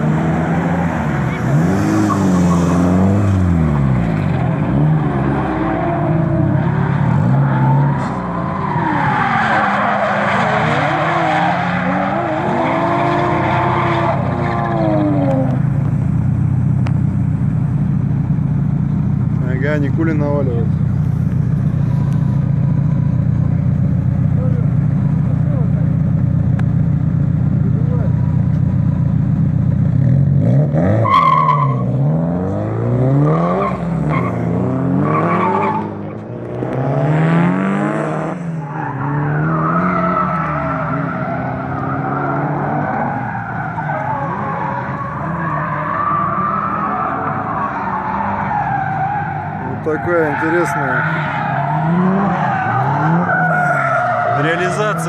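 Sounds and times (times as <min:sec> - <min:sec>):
engines revving: 0:00.0 - 0:55.0
car engine idling: 0:15.6 - 0:30.0
tyre squeal: 0:31.0 - 0:31.9, 0:38.6 - 0:55.0.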